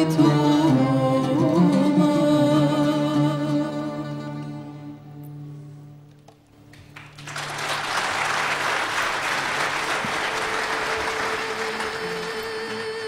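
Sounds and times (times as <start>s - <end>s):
audience applauding: 6.6s - 13.0s
held notes of music: 9.9s - 13.0s.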